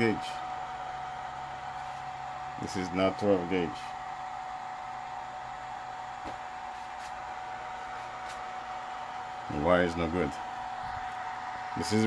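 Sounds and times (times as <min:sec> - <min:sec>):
cooling fan whirring: 0:00.0 - 0:12.0.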